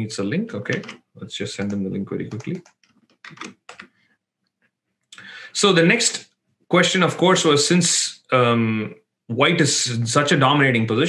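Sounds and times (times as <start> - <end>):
computer keyboard typing: 0.7 - 1.0, 1.6 - 3.9.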